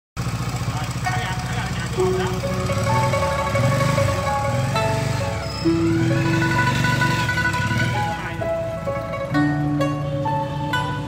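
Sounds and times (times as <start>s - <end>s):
motorcycle engine idling: 0.2s - 11.0s.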